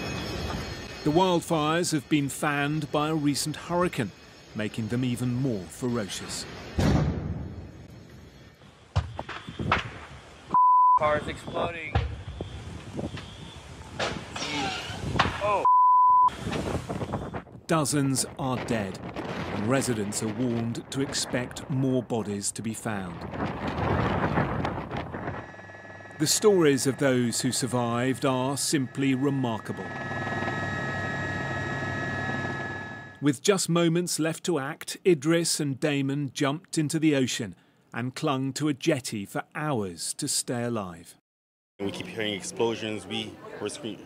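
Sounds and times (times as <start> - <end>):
aircraft high-pitched whine: 0.0 - 6.8, 25.1 - 33.2
censor bleep: 10.5 - 11.2, 15.6 - 16.3
man exclaiming: 15.4 - 15.7
wildfire rushing: 16.3 - 33.1
aircraft low flutter: 23.2 - 33.2.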